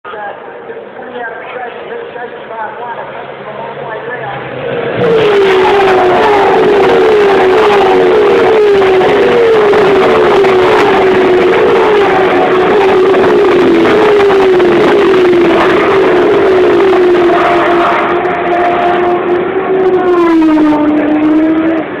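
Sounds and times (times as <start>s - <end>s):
racing car engines passing: 1.9s - 22.0s.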